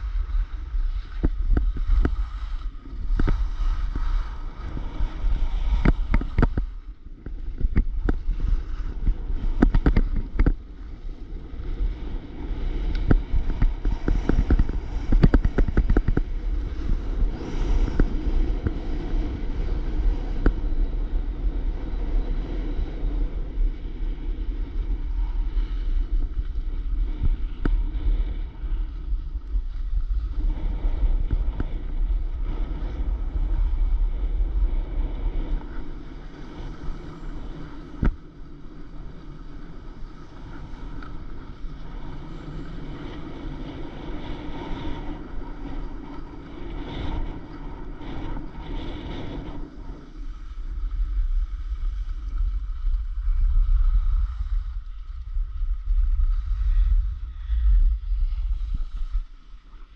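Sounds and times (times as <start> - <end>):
skis scraping on snow: 0.0 - 59.9
wind rumbling on microphone: 0.0 - 59.9.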